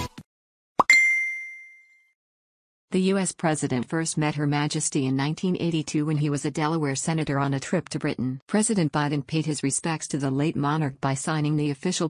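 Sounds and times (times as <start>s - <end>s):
bright bell-like ding: 0.8s - 2.1s.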